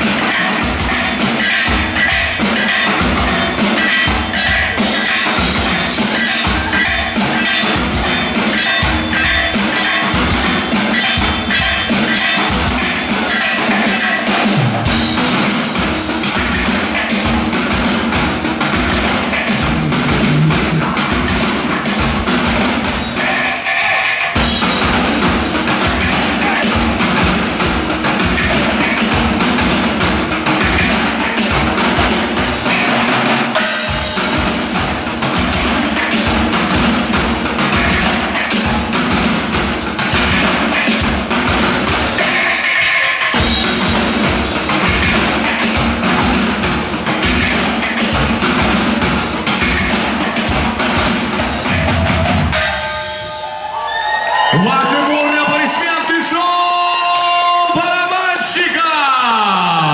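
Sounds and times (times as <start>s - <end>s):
drummers beating steel barrels: 0.0s - 59.9s.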